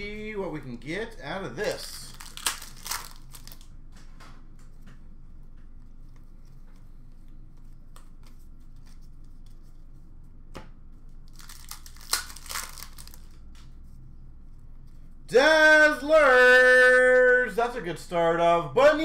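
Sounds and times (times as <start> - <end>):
wrapper crinkling: 1.8 - 3.7, 11.3 - 13.5
wrapper tearing: 1.9 - 3.7, 11.3 - 13.5.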